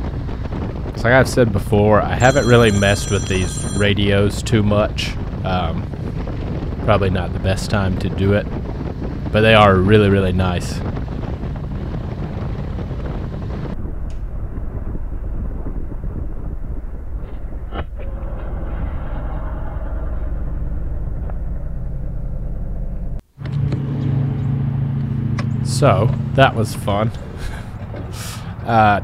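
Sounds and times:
motorcycle engine and wind rumble: 0:00.0 - 0:02.2, 0:04.0 - 0:17.7.

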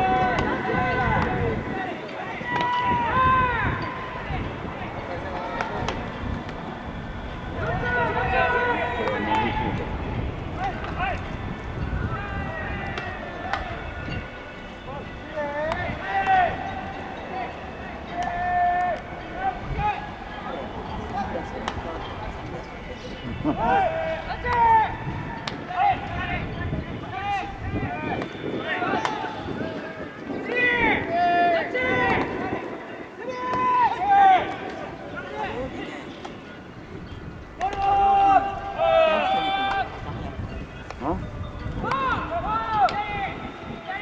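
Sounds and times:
outdoor background noise: 0:00.0 - 0:44.0
players shouting calls: 0:00.0 - 0:44.0.

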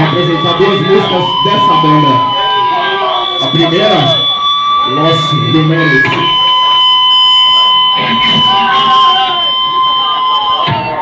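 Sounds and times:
high-pitched feedback whine: 0:00.0 - 0:11.0.

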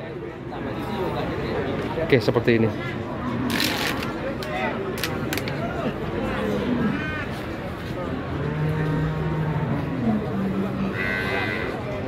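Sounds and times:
cow mooing: 0:10.9 - 0:11.8.

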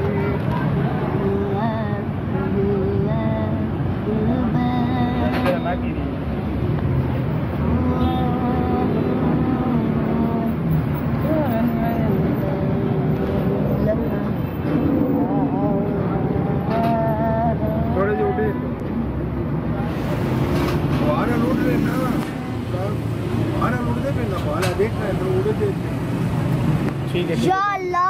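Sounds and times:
people talking: 0:04.3 - 0:06.0, 0:15.2 - 0:18.8, 0:20.9 - 0:25.9.

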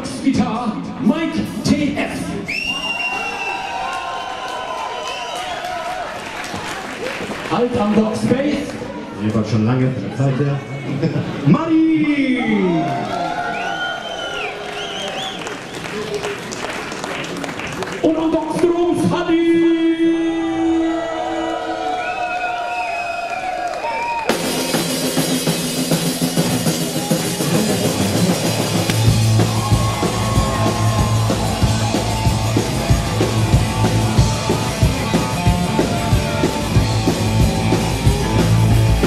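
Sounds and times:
man's voice: 0:18.0 - 0:20.9
drum kit: 0:24.2 - 0:39.0
electric guitar: 0:24.3 - 0:39.0
rock band playing: 0:24.3 - 0:39.0
bass guitar: 0:24.4 - 0:39.0.

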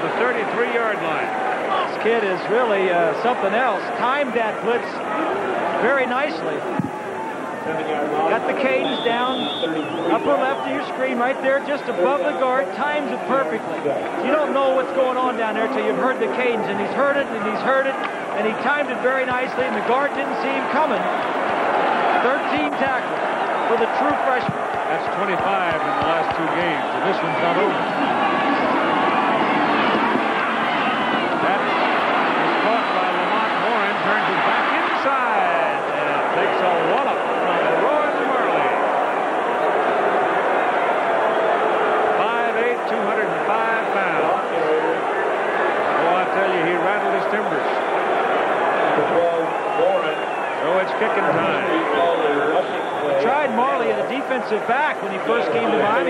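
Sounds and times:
stadium crowd din: 0:00.0 - 0:56.0.

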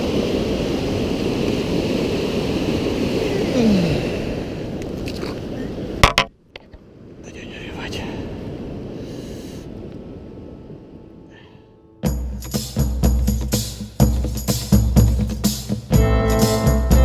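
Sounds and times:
river water rushing: 0:00.0 - 0:09.6
wind on microphone: 0:00.0 - 0:11.3
man speaking softly: 0:07.2 - 0:08.4.

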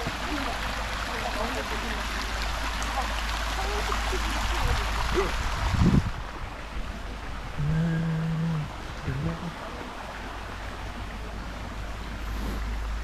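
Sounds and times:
rushing wind: 0:04.5 - 0:07.7
short low hum: 0:07.6 - 0:09.5.

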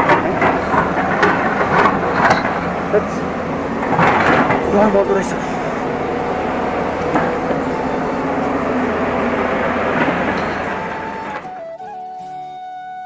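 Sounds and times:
loud rushing roar: 0:00.0 - 0:11.7
background music with held notes: 0:00.0 - 0:13.0.

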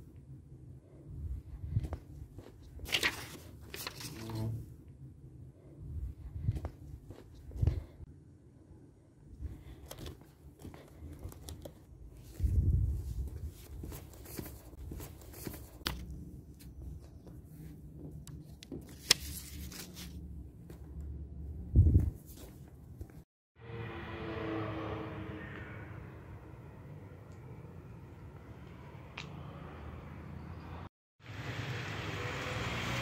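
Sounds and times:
paper handling: 0:02.4 - 0:04.6, 0:13.1 - 0:20.8.

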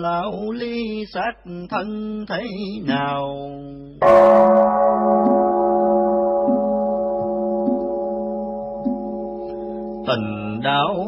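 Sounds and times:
bell ringing: 0:04.0 - 0:10.9.

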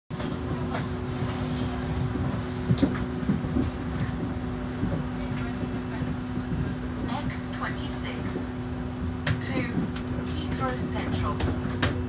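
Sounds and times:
bus interior rumble and hum: 0:00.1 - 0:12.0.

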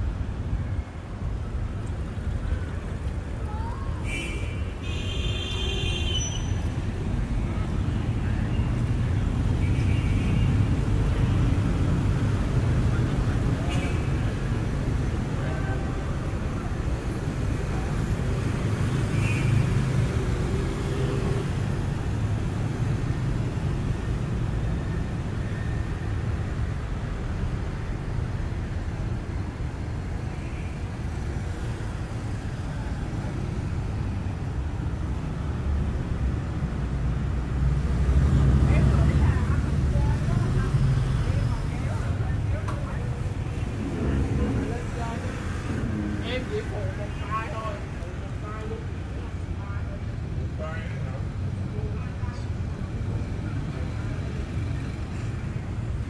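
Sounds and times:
traffic rumble: 0:00.0 - 0:56.0.

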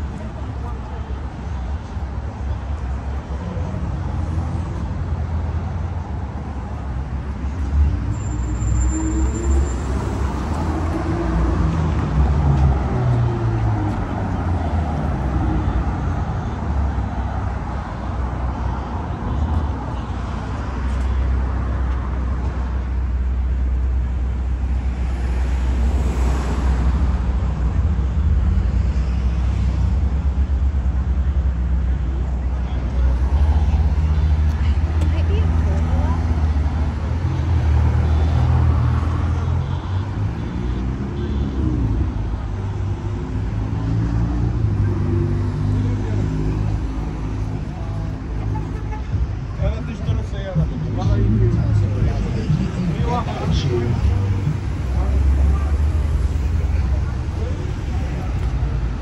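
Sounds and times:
cars driving past: 0:00.0 - 0:59.0.

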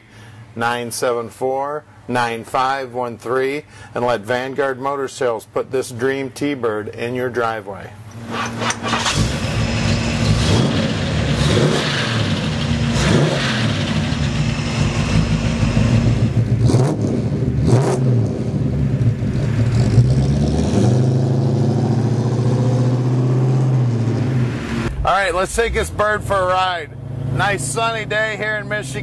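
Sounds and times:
engine revving: 0:08.2 - 0:29.0.

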